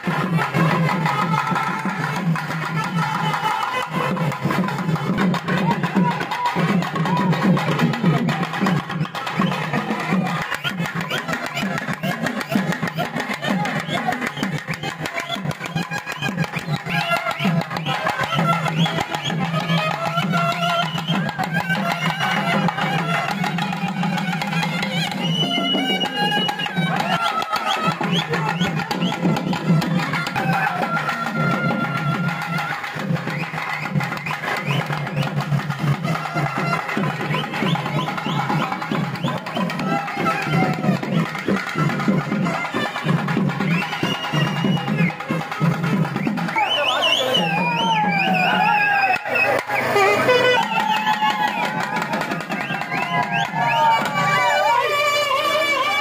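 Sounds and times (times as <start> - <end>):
crowd voices: 0.0 - 56.0
fast barrel drumming: 0.0 - 56.0
reed pipe melody: 48.5 - 56.0.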